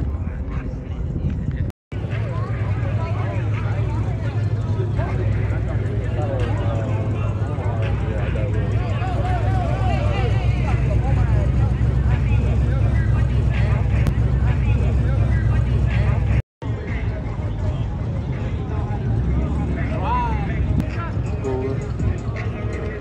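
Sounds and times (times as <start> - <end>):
car engine rumble: 0.0 - 23.0
crowd chatter: 0.0 - 23.0.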